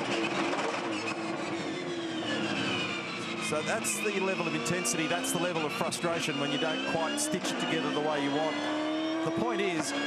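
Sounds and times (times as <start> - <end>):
race car engine droning: 0.0 - 10.0.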